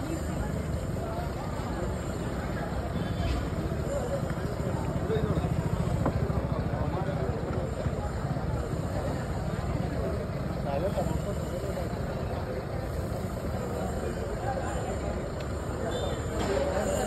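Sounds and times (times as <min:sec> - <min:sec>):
faint indistinct voices: 0:00.0 - 0:17.0.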